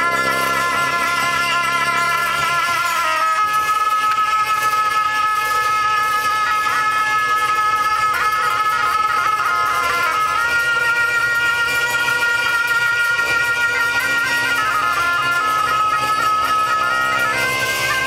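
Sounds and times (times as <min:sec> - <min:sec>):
double-reed oboes playing melody: 0:00.0 - 0:18.0.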